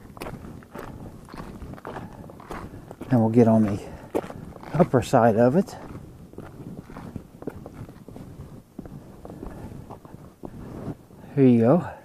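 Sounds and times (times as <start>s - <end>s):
footsteps on gritty rock and sand: 0.0s - 11.0s.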